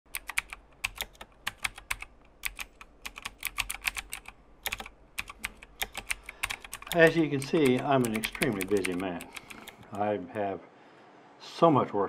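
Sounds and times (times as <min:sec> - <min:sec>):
typing on computer keyboard: 0:00.1 - 0:09.9.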